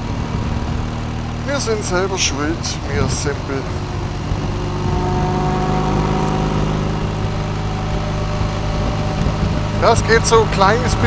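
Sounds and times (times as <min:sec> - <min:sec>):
motorcycle engine cruising: 0:00.0 - 0:11.0
wind and road noise: 0:00.0 - 0:11.0.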